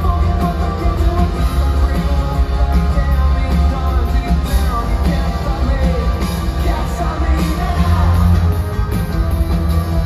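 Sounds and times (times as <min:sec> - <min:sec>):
drum kit: 0:00.0 - 0:10.0
guitar: 0:00.0 - 0:10.0.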